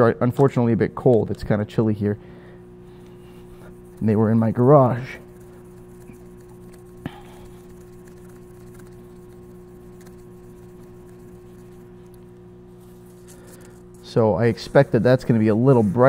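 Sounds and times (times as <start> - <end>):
low hum: 0.7 - 16.0
polishing pad rubbing metal: 2.8 - 16.0.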